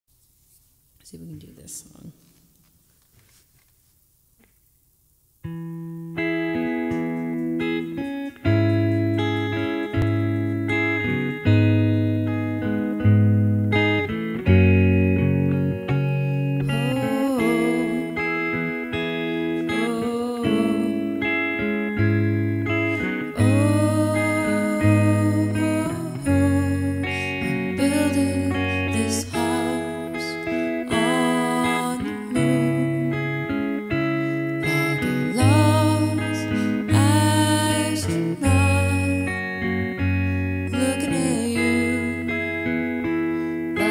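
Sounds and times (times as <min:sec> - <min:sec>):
electric guitar picking: 0:05.4 - 0:43.9.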